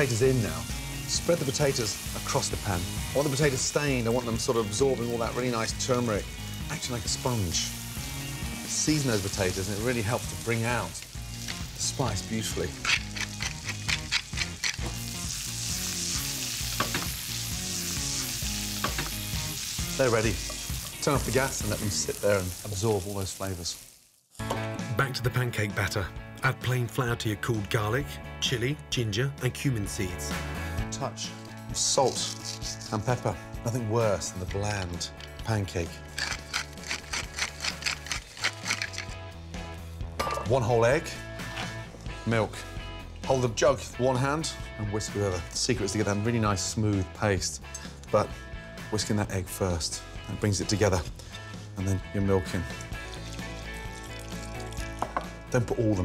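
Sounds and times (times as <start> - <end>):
background music: 0.0 - 23.8, 24.4 - 56.0
potatoes sizzling in oil: 0.0 - 24.4, 52.6 - 56.0
pepper mill grinding: 8.6 - 21.9, 31.8 - 33.2, 34.7 - 39.2, 52.7 - 55.3.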